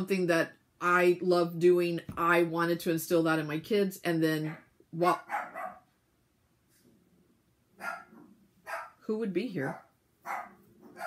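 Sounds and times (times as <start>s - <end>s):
dog barking: 4.5s - 5.9s, 7.8s - 9.0s, 9.8s - 11.0s.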